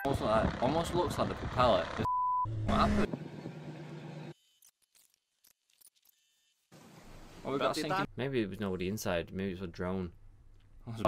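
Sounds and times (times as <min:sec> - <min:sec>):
vehicle engine and road noise: 0:00.0 - 0:04.4.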